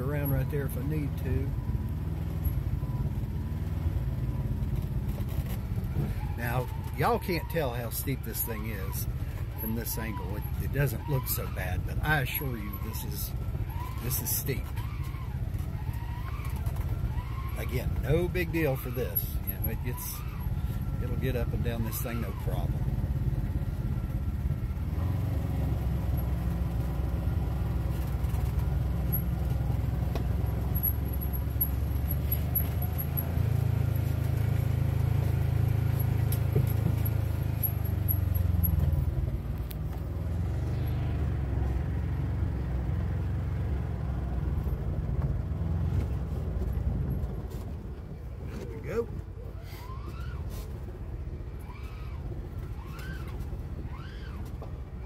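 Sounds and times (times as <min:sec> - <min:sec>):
utv engine running: 0:00.0 - 0:55.0.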